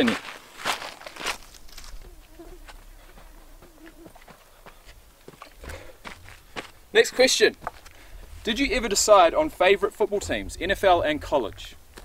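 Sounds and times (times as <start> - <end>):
footsteps on gravelly dirt: 0.0 - 12.0.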